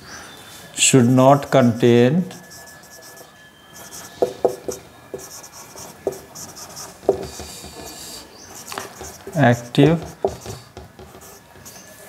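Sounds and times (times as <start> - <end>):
marker pen writing on whiteboard: 2.4 - 11.9.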